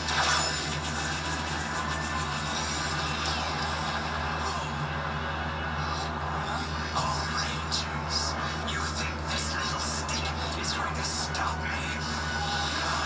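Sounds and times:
whirring sci-fi weapon effect: 0.0s - 4.0s.

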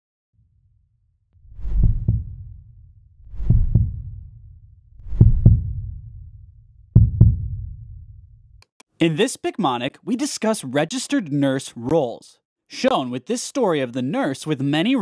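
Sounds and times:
heartbeat thumps: 1.5s - 2.7s, 3.3s - 4.4s, 5.0s - 8.3s.

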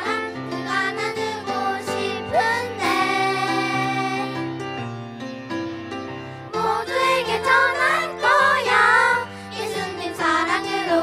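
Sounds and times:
children's choir singing: 0.0s - 4.5s, 6.6s - 11.0s
instrumental accompaniment: 0.0s - 10.9s.

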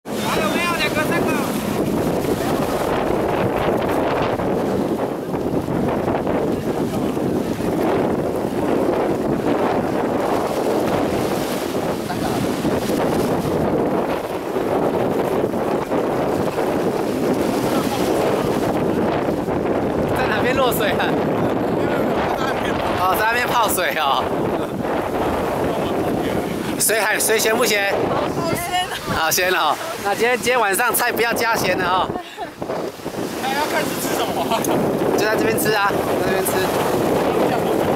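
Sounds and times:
wind on microphone: 0.0s - 37.9s
small waves washing in: 0.1s - 37.9s.

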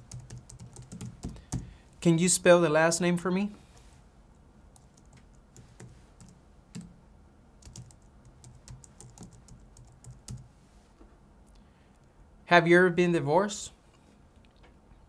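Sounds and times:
computer keyboard typing: 0.0s - 1.7s, 4.7s - 6.9s, 7.6s - 10.5s.

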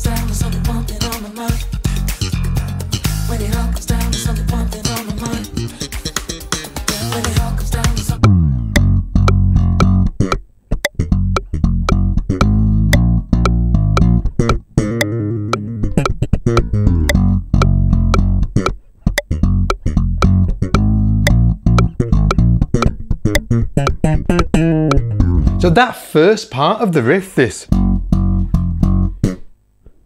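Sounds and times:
slap bass guitar: 0.0s - 25.8s, 27.7s - 30.0s.

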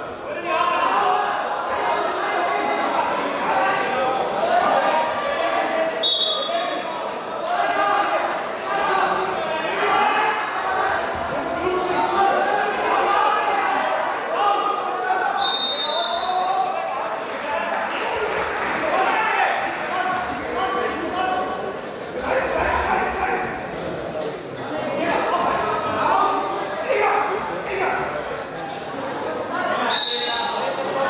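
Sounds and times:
voices echoing in a hall: 0.0s - 31.0s.

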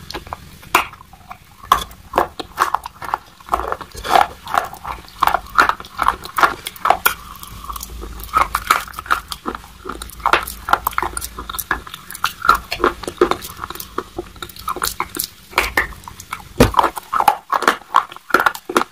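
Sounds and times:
crisp chewing cracks: 0.0s - 18.9s.

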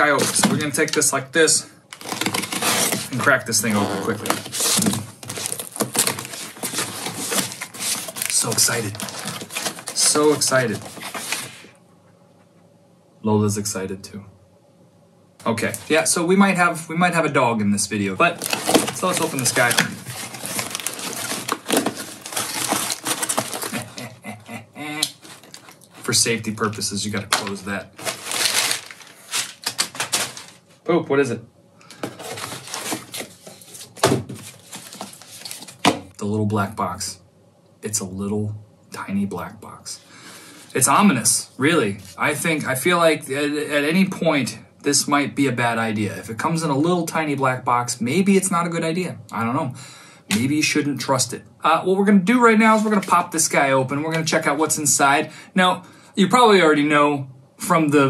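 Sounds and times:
cardboard box rustling: 2.0s - 11.6s, 18.3s - 24.1s, 25.1s - 26.1s, 27.4s - 30.6s, 32.0s - 36.0s.

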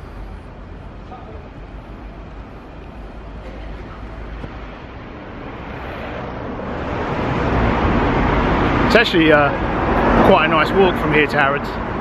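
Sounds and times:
road traffic noise: 0.0s - 12.0s
vehicle approaching: 0.0s - 12.0s.

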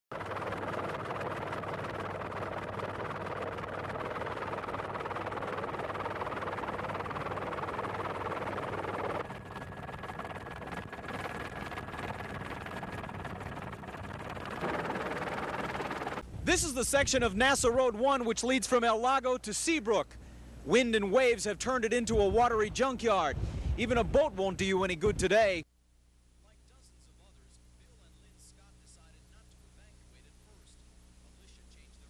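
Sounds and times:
aircraft engine and rotor noise: 0.1s - 16.4s.

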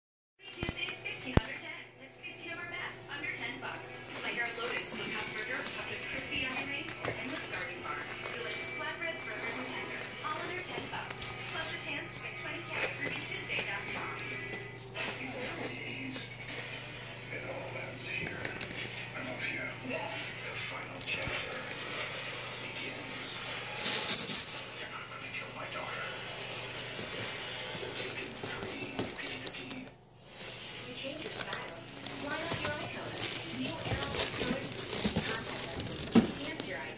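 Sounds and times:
low electrical hum: 0.4s - 36.9s
television music and voices: 0.4s - 36.9s.

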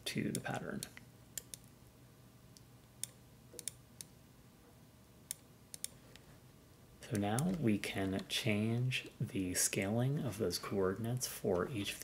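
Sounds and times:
faint computer mouse clicks: 2.6s - 4.1s, 5.3s - 6.3s.

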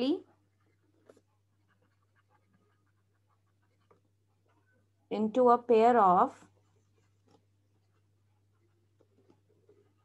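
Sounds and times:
woman speaking: 0.0s - 0.4s, 5.1s - 6.5s
stylus scratching on tablet screen: 0.0s - 10.0s.

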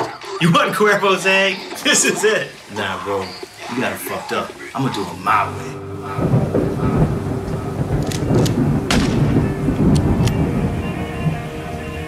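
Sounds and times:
music with sustained tones: 3.1s - 12.0s
thunder rumbling and cracking: 5.7s - 12.0s.

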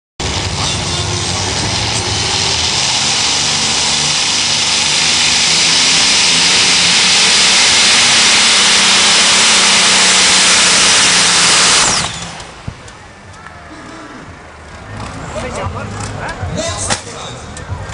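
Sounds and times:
pulling tractor engines roaring: 0.2s - 17.9s.

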